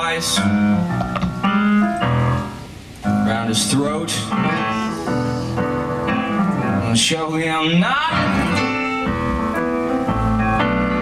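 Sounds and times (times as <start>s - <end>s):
keyboard chords: 0.0s - 7.0s, 8.0s - 11.0s
live band playing: 0.0s - 11.0s.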